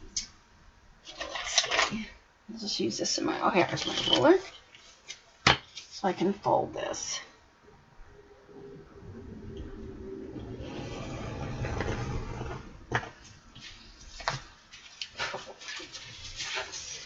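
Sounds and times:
hand roller rubbing paper: 0:10.6 - 0:12.7
paper crackling: 0:13.6 - 0:17.0.

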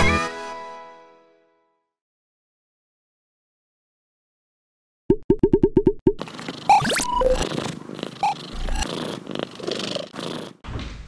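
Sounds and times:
cat purring: 0:06.2 - 0:10.6
pitched blips: 0:06.7 - 0:07.4.

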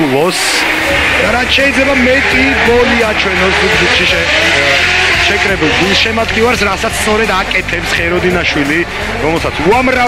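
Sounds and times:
car engine revving hard: 0:00.1 - 0:10.0.

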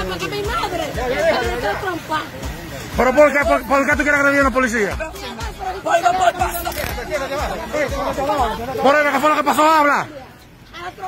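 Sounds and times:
people talking over one another: 0:00.0 - 0:11.0.

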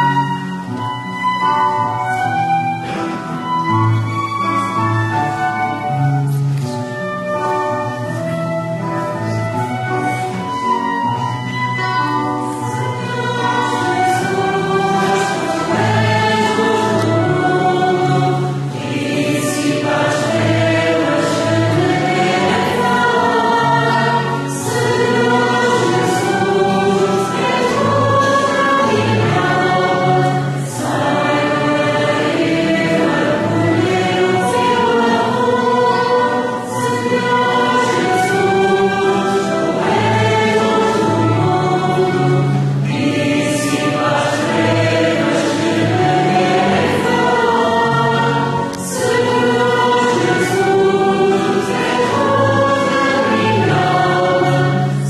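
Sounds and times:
many voices singing a hymn: 0:00.0 - 0:55.0.

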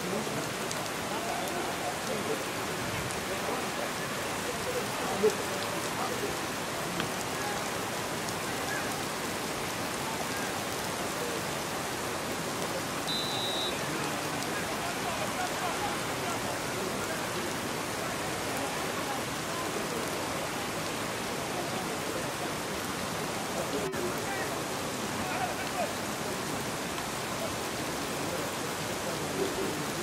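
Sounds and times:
heavy rain: 0:00.0 - 0:30.0
faint shouting voices: 0:12.9 - 0:20.5
whistle blast: 0:13.1 - 0:13.9.

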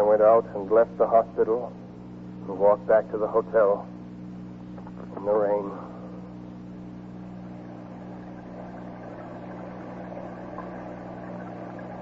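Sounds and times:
low electrical hum: 0:00.0 - 0:12.0
recording hiss: 0:00.0 - 0:12.0.

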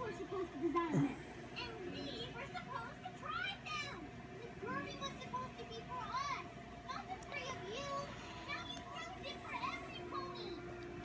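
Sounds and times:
steady faint hum: 0:00.0 - 0:11.0
child-like voices chattering: 0:00.7 - 0:11.0.

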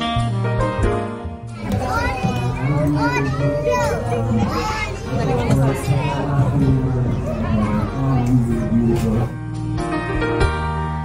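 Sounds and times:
young children talking and calling out: 0:01.5 - 0:09.4.

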